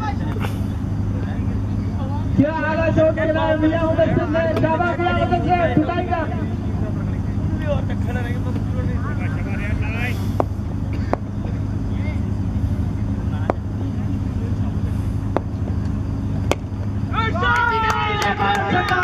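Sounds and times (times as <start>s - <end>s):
steady low hum: 0.0s - 19.0s
players shouting: 16.5s - 19.0s.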